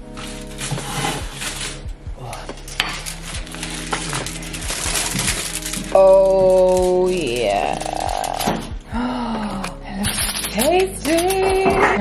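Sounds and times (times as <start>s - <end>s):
aluminium foil rustling: 0.0s - 8.7s, 9.7s - 12.0s
background music: 0.0s - 12.0s
crockery clinking and knocking: 10.0s - 12.0s.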